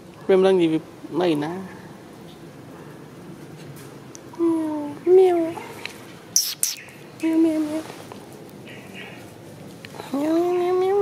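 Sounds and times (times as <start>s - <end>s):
sharp high-pitched hisses: 6.4s - 6.9s.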